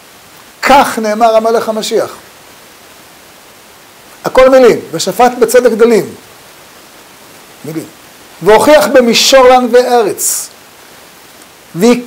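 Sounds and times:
faint microphone hiss: 0.0 - 12.0
man speaking: 0.6 - 2.3, 4.2 - 6.2, 7.6 - 10.6, 11.7 - 12.0.

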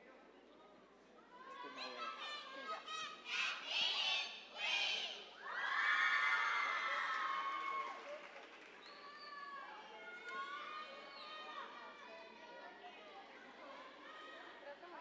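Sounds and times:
children shouting and cheering: 1.6 - 7.9.

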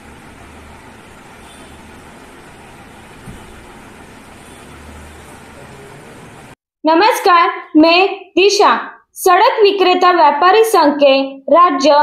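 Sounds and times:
low hum: 0.0 - 6.6.

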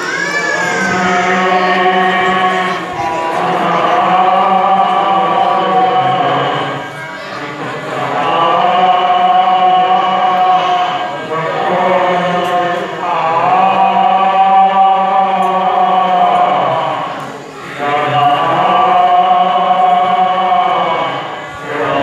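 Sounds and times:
group chanting: 0.0 - 22.0.

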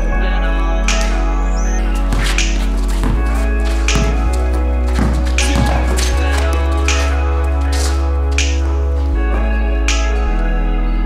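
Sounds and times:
deep held bass: 0.0 - 11.0
instrumental hip-hop music: 0.0 - 11.0
sharp snap: 0.9 - 1.3, 6.9 - 8.7.

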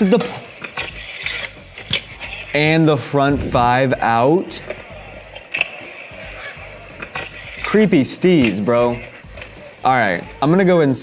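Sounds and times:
background music: 0.0 - 11.0
scooter wheels rolling on concrete: 0.0 - 11.0.

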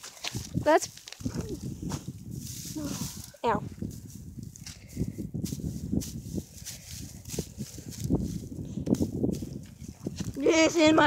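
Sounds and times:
hay rustling against microphone: 0.0 - 10.1.

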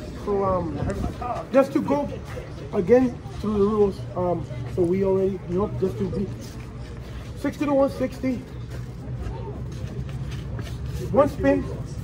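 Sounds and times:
faint background talking: 0.0 - 12.0.

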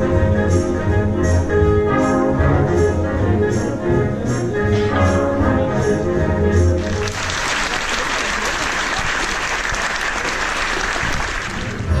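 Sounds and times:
orchestra music: 0.0 - 8.5
audience applauding: 6.8 - 12.0.

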